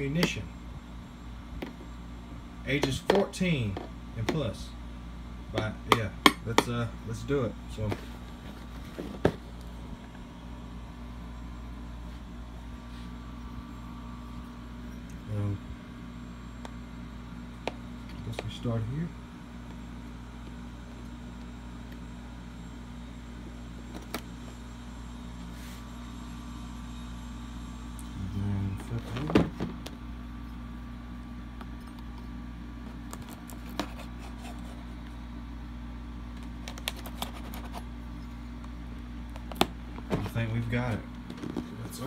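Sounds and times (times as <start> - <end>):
low room hum: 0.0 - 42.0.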